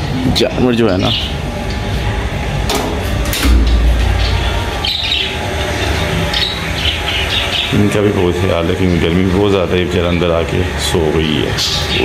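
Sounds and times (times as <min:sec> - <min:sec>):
steady low rumble: 0:02.1 - 0:06.9.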